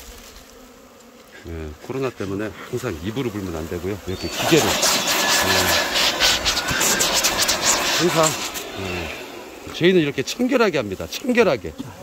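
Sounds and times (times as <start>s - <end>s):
leaf blower running: 4.1s - 10.4s.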